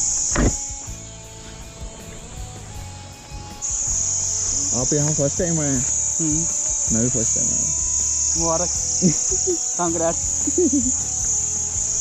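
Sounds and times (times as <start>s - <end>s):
insects high-pitched drone: 0.0s - 12.0s.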